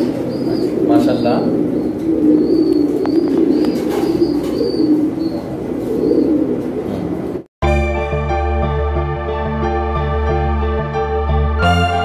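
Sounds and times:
pigeons cooing: 0.0 - 7.4
music: 7.6 - 12.0.

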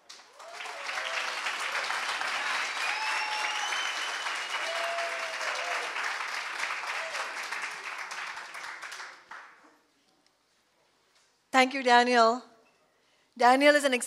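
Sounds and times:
audience applauding: 0.0 - 9.6
voices whooping and calling out: 0.4 - 6.0.

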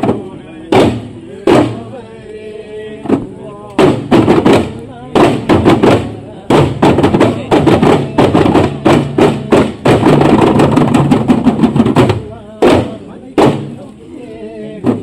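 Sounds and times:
frame drums struck by hand: 0.0 - 2.0, 3.0 - 13.8
men's voices: 0.0 - 10.7, 11.6 - 15.0.

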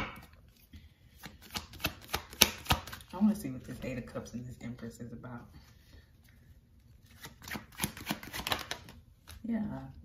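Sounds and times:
cards being shuffled: 0.4 - 3.1, 7.0 - 9.4.

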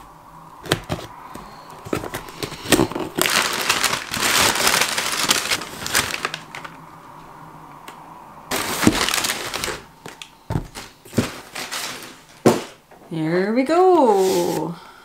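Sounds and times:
packing paper crinkling: 0.7 - 6.8, 8.5 - 12.5.

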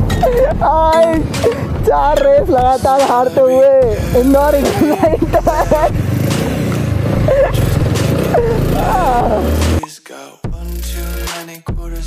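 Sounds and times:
background music with singing: 0.0 - 6.8, 7.4 - 12.0
motorcycle engine rumbling: 0.0 - 9.8.

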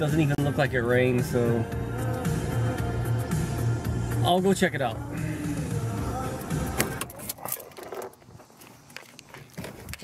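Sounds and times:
background music: 0.0 - 7.2
clicks and rattles in car: 6.7 - 8.6.

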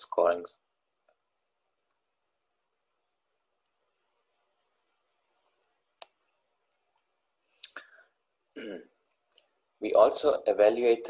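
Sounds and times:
man speaking: 0.0 - 0.7, 9.8 - 11.0
mouth click: 7.6 - 7.9
voiced throat sound: 8.5 - 9.0.

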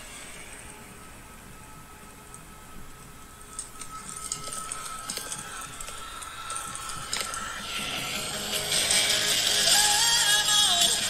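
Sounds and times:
music through phone speaker: 0.0 - 11.0.

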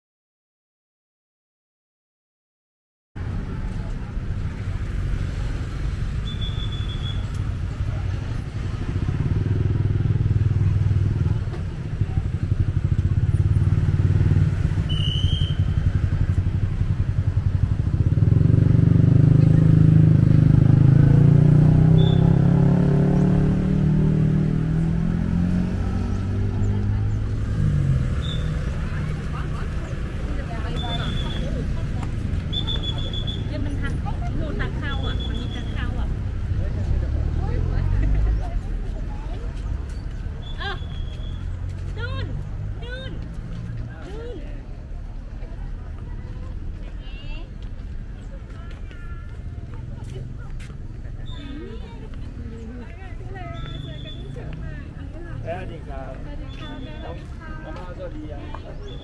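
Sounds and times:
car engines passing: 3.2 - 59.0
motorbike engines passing: 3.2 - 59.0
people talking: 19.0 - 20.9, 25.6 - 40.0, 40.6 - 59.0.

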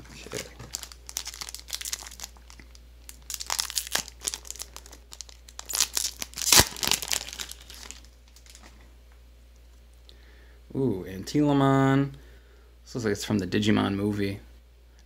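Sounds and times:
foil wrapper crinkling: 0.2 - 8.8
foil ripping: 0.3 - 8.7.

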